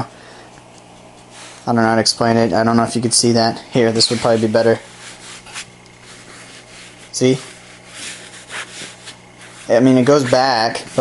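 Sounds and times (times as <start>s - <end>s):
hand rubbing fabric: 0.4s - 11.0s.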